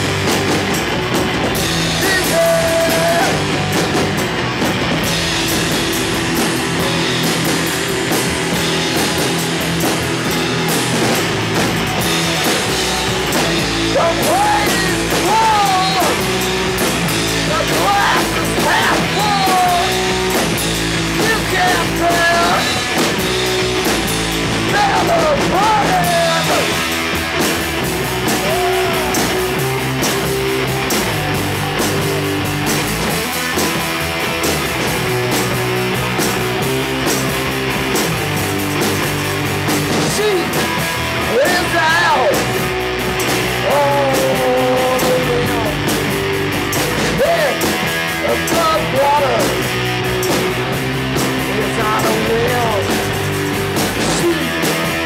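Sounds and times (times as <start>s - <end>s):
drum kit: 0.0s - 55.0s
electric guitars: 0.0s - 55.0s
live rock band playing: 0.0s - 55.0s.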